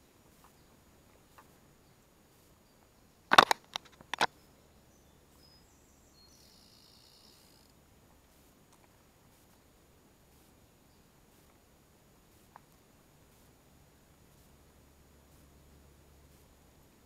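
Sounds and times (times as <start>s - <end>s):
faint high bird chirping: 0.0s - 3.3s, 4.3s - 8.4s, 10.3s - 11.5s.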